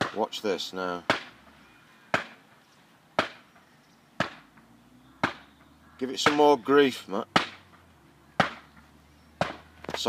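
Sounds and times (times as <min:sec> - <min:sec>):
sharp blows into ground: 0:04.2 - 0:05.5.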